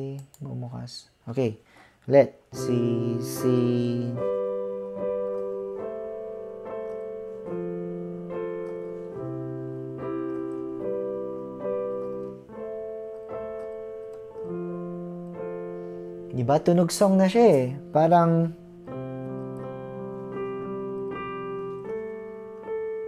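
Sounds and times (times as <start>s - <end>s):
piano chords: 2.5s - 23.0s.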